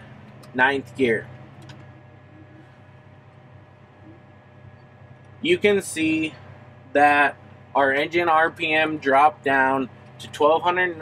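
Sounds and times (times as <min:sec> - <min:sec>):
tractor engine humming: 0:00.0 - 0:11.0.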